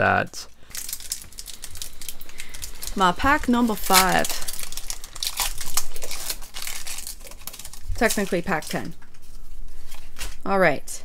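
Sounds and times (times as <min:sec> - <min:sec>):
foil wrapper crinkling: 0:00.6 - 0:10.4.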